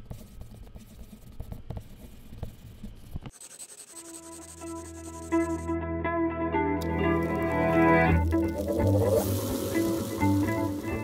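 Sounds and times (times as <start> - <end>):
pen scratching on paper: 0.0 - 5.7
musical notes: 4.2 - 11.0
steady hiss: 8.1 - 11.0.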